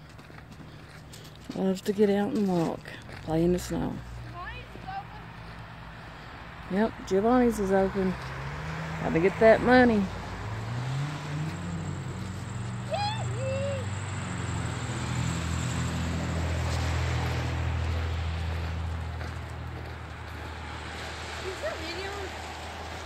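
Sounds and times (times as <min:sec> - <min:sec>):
vehicle engine humming: 0:00.0 - 0:23.0.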